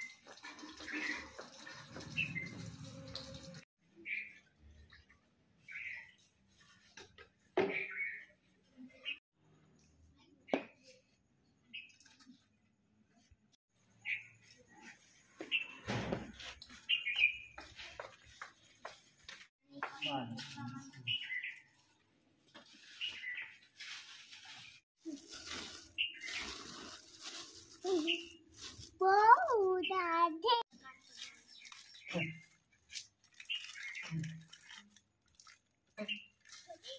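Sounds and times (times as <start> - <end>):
small birds chirping: 16.5 - 19.0, 19.8 - 22.0, 22.7 - 23.8, 25.8 - 27.1, 27.8 - 28.7, 29.7 - 34.8.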